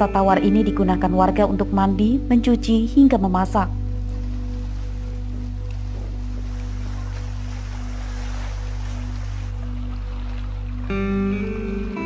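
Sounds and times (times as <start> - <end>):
music with sustained low notes: 0.0 - 12.0
lake water lapping at shore: 3.7 - 12.0.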